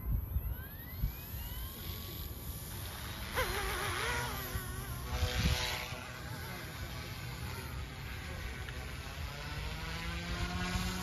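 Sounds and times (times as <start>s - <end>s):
rc helicopter whine: 0.0s - 11.0s.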